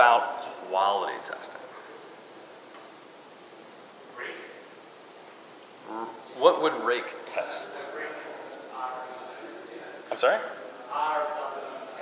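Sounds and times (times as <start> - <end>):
room hiss: 0.0 - 12.0
distant voice calling out: 5.8 - 6.5.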